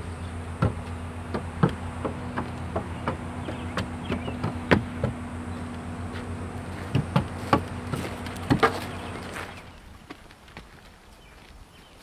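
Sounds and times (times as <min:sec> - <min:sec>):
steady low hum: 0:00.0 - 0:10.4
horse hooves on wooden bridge: 0:00.3 - 0:12.0.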